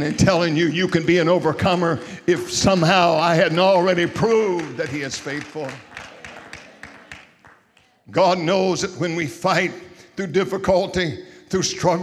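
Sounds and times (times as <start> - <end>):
faint echo: 0.0 - 11.8.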